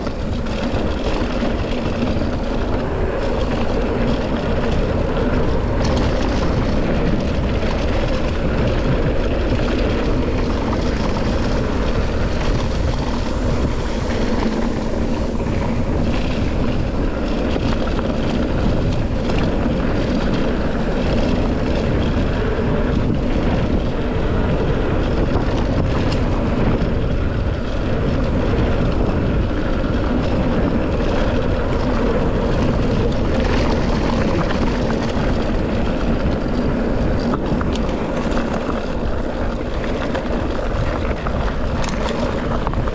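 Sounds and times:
bike rattles: 0:00.0 - 0:42.9
tyre noise on dirt: 0:00.0 - 0:42.9
wind on microphone: 0:00.0 - 0:42.9.

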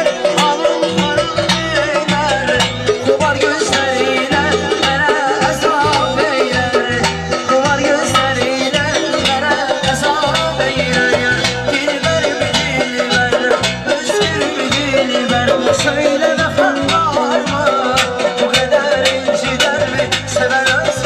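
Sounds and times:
accordion: 0:00.0 - 0:21.0
drum beat: 0:00.0 - 0:21.0
man singing: 0:00.0 - 0:21.0.

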